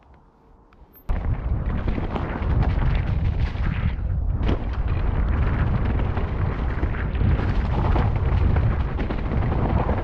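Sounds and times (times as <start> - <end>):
wind rumble on microphone: 1.1 - 10.0.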